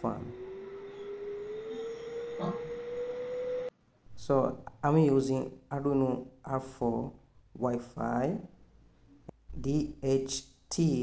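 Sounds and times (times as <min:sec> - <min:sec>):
cooling fan motor whine: 0:00.0 - 0:03.7.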